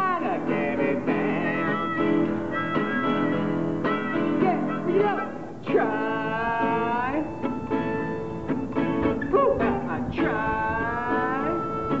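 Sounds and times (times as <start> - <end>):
harmonica: 0.0 - 9.3, 11.1 - 12.0
acoustic guitar: 0.0 - 12.0.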